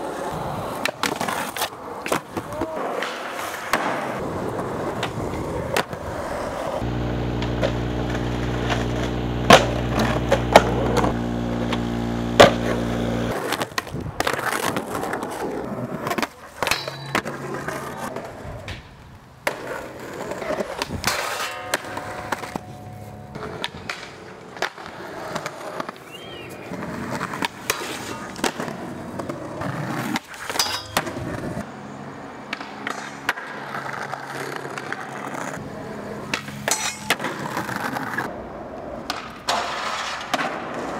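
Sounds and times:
skateboard clacks and knocks: 0.0 - 6.3, 36.2 - 40.9
skateboard wheels rolling on concrete: 0.0 - 40.9.

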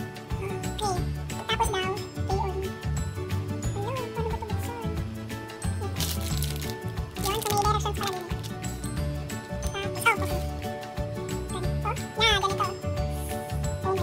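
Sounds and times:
playful background music: 0.0 - 14.0
thin plastic crinkling: 5.8 - 8.8, 9.9 - 10.7.

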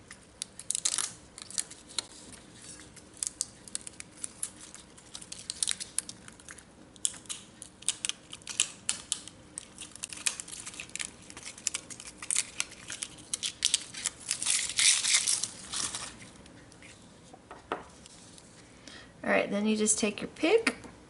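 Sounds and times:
metallic foil crinkling: 0.0 - 16.4.

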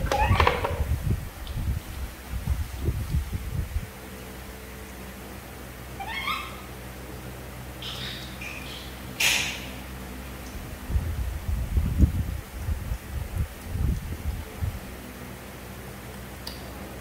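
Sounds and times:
baby monkey squeaky call: 6.0 - 6.7, 7.8 - 9.7.

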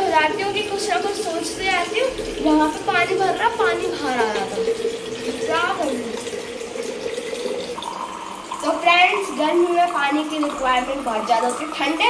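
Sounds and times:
water running into bottle: 0.0 - 12.0.

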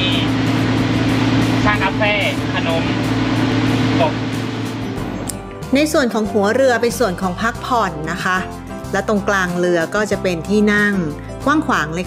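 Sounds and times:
boat engine idling: 0.0 - 5.5.

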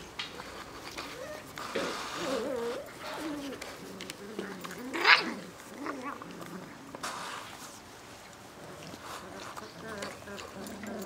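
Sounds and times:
puppies whining and crying: 0.7 - 6.2.

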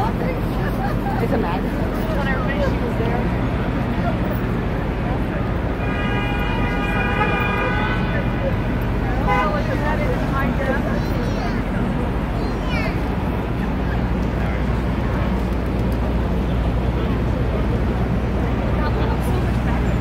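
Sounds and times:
passers-by talking: 0.0 - 20.0
traffic hum: 0.0 - 20.0
vehicle horn blast: 5.8 - 8.2, 9.2 - 9.6.

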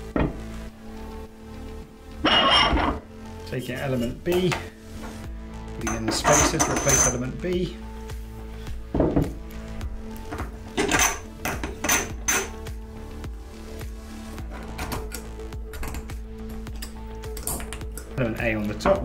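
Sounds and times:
quiet background music: 0.0 - 19.0
steel parts clinking: 2.2 - 3.0, 5.8 - 7.3, 10.3 - 12.6, 14.5 - 18.2.

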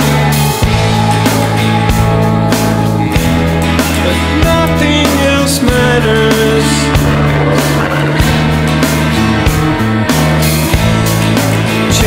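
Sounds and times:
rock instrumental with low chords: 0.0 - 12.0
drum hits: 4.4 - 11.4.

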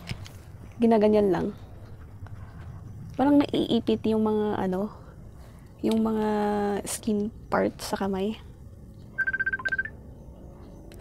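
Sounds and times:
electronic beeping trill: 9.2 - 10.0.

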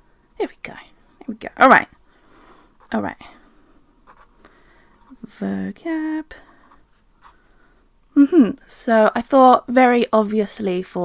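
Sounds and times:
person speaking: 0.4 - 2.0, 2.8 - 3.5, 5.0 - 6.8
pen scratching on paper: 4.0 - 4.3.

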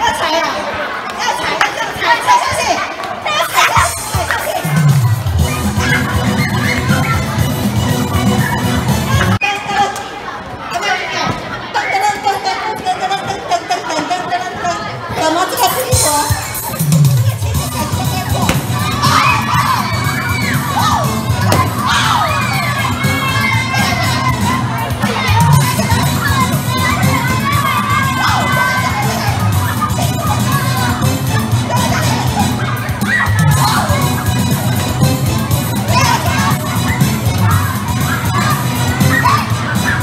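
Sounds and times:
children shrieking and cheering: 0.0 - 9.4, 16.2 - 34.8, 35.8 - 40.0
balloons popping: 18.4 - 19.2, 21.4 - 21.9.

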